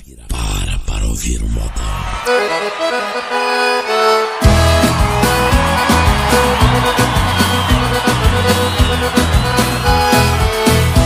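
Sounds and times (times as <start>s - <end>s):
solo accordion melody: 2.3s - 11.0s.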